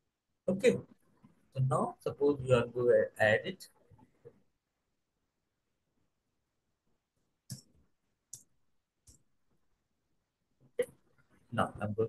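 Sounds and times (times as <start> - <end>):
man speaking: 0.5 - 0.9, 1.6 - 3.7, 11.5 - 12.0.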